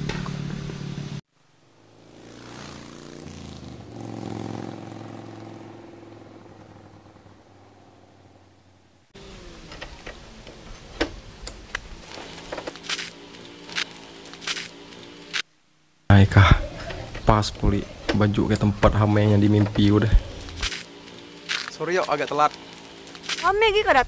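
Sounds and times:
scooter engine: 0.0s - 1.2s, 1.8s - 15.2s, 16.6s - 24.0s.

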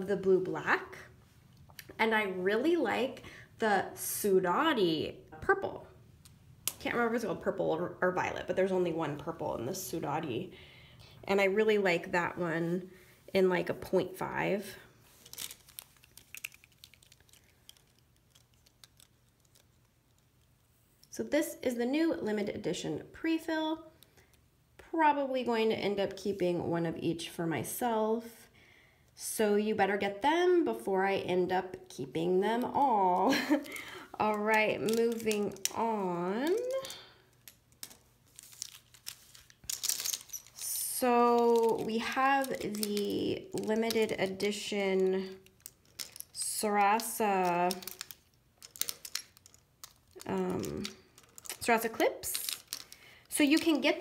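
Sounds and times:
plastic pens and packaging clicking: 15.2s - 20.5s, 32.6s - 35.8s, 36.4s - 54.0s
light clicks of pens: 47.7s - 51.6s, 52.4s - 53.7s.

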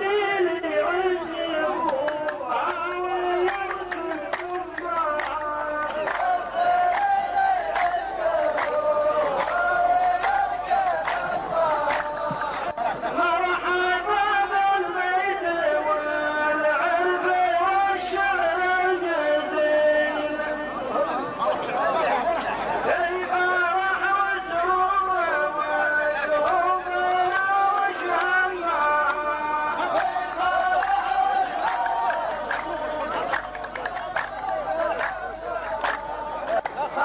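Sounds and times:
men chanting in unison: 0.0s - 37.0s
men's voices overlapping: 0.0s - 37.0s.

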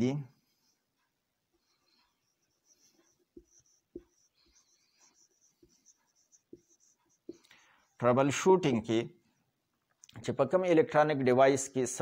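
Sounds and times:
marker squeaking on whiteboard: 0.4s - 9.9s.

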